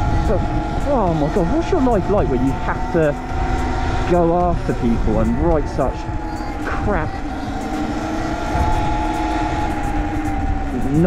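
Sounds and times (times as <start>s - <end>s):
electric motor and drivetrain whine: 0.0s - 11.0s
wind on microphone: 0.0s - 11.0s.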